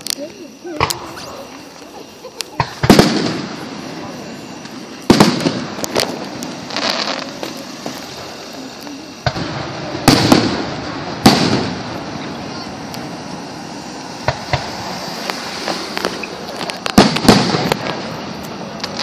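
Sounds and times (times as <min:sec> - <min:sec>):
fireworks exploding: 0:00.0 - 0:19.0.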